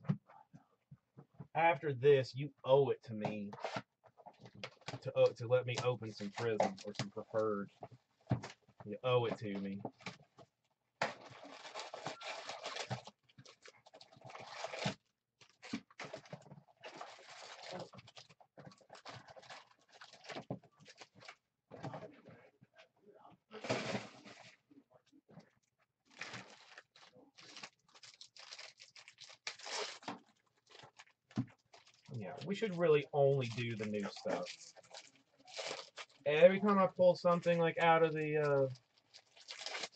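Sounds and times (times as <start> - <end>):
foil packs handled: 11.0 - 21.4, 26.1 - 32.1, 33.4 - 36.2, 38.6 - 39.9
plastic wrap crinkling and tearing: 11.0 - 21.4, 26.1 - 32.8, 33.4 - 36.2, 38.4 - 39.9.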